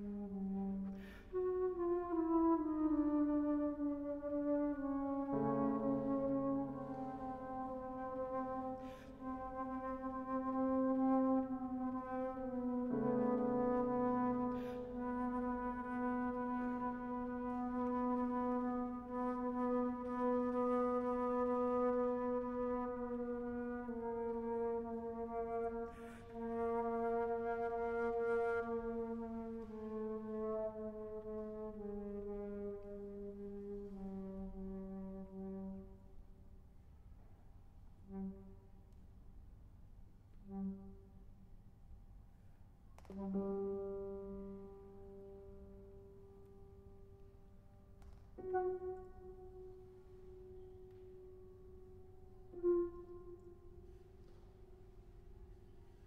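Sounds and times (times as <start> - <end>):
flute: 0.0 - 36.3, 38.0 - 39.0, 40.4 - 41.4, 43.0 - 56.0
piano: 0.0 - 56.0.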